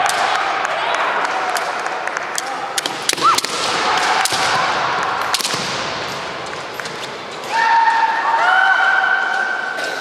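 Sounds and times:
bamboo swords clacking: 2.4 - 4.6, 5.2 - 7.5.

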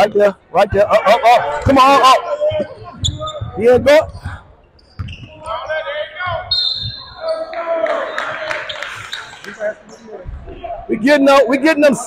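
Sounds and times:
crowd noise and voices: 0.0 - 12.0.

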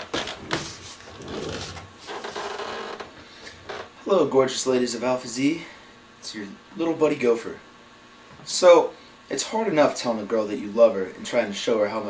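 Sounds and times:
fabric rubbing: 0.0 - 2.6
padded chair creaking: 0.0 - 4.0.

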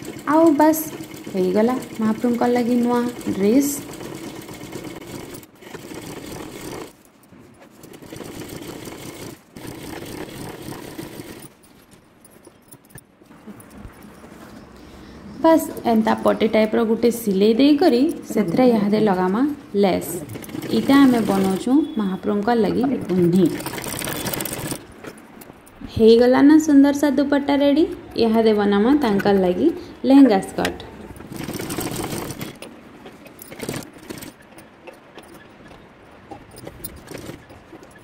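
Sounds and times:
sewing machine stitching: 0.0 - 7.0, 7.7 - 11.5, 17.5 - 24.8, 31.2 - 32.7, 33.3 - 34.6, 36.5 - 38.0.

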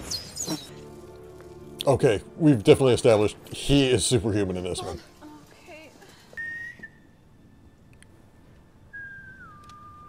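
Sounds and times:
person whistling signal call: 6.4 - 7.2, 8.9 - 10.0.

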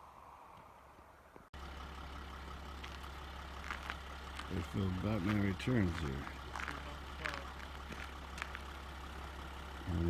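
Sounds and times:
vehicle engine droning: 0.0 - 10.0.

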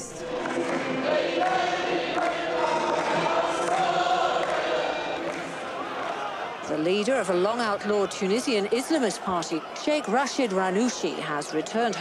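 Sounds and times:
crowd singing together: 0.0 - 6.4.

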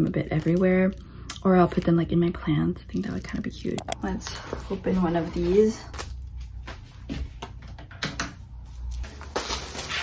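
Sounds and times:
plastic wrapping rustling: 8.7 - 10.0
plastic crinkling: 8.8 - 10.0.

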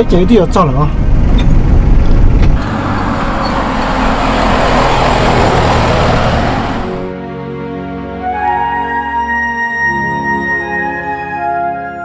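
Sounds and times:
engine and road rumble in cab: 0.0 - 7.1
truck driving past: 2.1 - 7.2.

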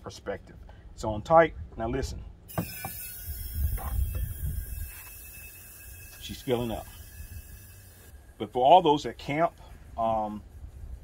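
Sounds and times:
propane hissing: 2.5 - 10.5.

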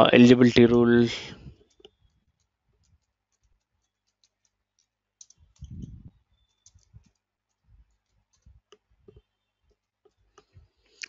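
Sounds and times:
faint keyboard keystrokes: 1.5 - 10.7.

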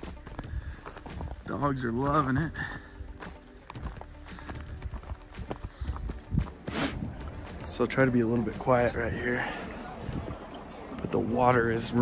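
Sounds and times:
footsteps on rocky ground: 0.0 - 12.0
rustling through dry brush: 3.1 - 7.7
wind rumble on microphone: 5.7 - 7.4, 10.0 - 10.5.

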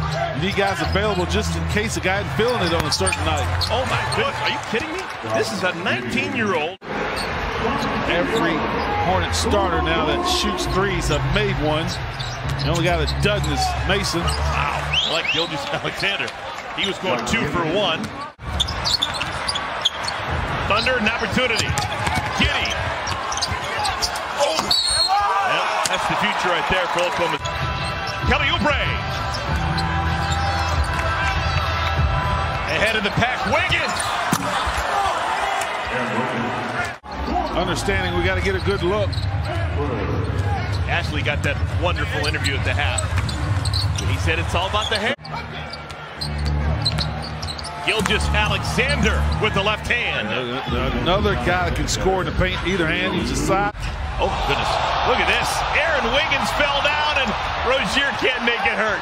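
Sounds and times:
sneaker squeaks: 11.9 - 13.6, 14.2 - 15.5, 18.0 - 20.9, 21.5 - 25.2, 29.0 - 31.0, 33.6 - 34.7, 38.5 - 39.6, 42.2 - 48.1
basketball bouncing on court: 21.5 - 23.9.

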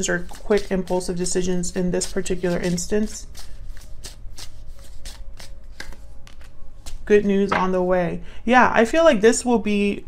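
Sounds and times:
cards being shuffled: 0.0 - 7.1
sharp card slaps: 5.1 - 7.0.

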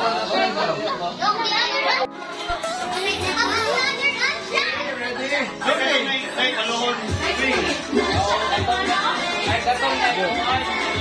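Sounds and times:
children chattering: 0.0 - 11.0
music from television: 0.0 - 11.0.

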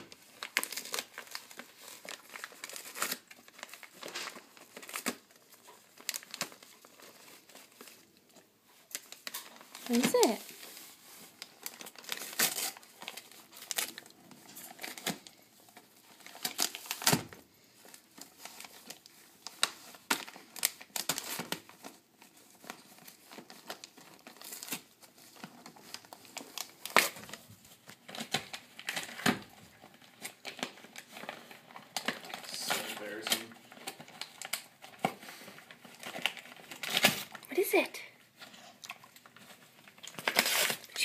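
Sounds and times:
wrapping paper crinkling and tearing: 0.0 - 41.0.

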